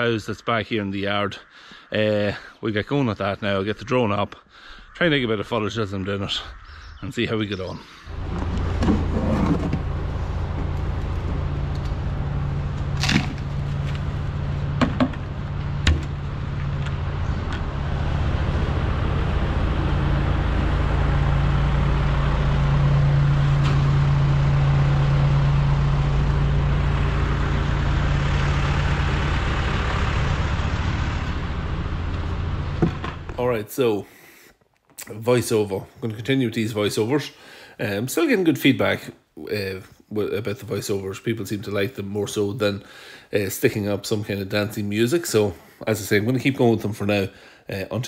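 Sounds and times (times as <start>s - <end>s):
diesel engine running: 4.5s - 33.5s.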